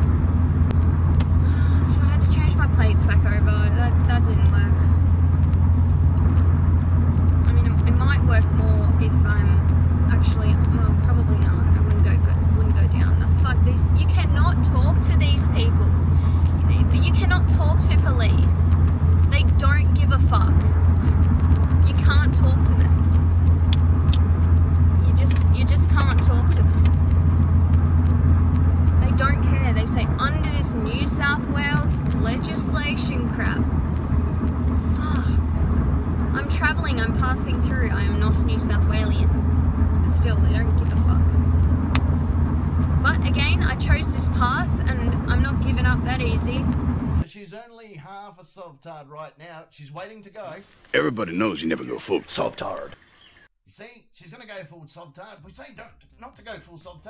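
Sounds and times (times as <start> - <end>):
car cabin rumble: 0.0 - 47.2
woman talking: 1.4 - 5.0, 7.4 - 21.2, 21.8 - 23.0, 25.0 - 26.9, 29.0 - 33.6, 34.9 - 35.4, 36.3 - 39.4, 40.0 - 41.4, 43.0 - 46.7.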